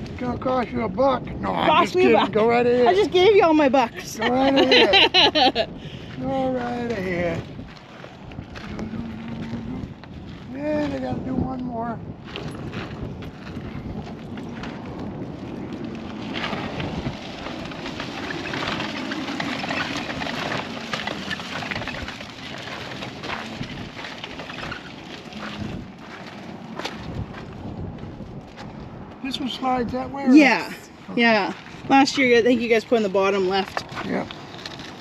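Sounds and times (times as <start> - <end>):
wind buffeting microphone: 0.0 - 35.0
footsteps on gravel: 3.6 - 11.4, 12.1 - 29.2, 30.9 - 35.0.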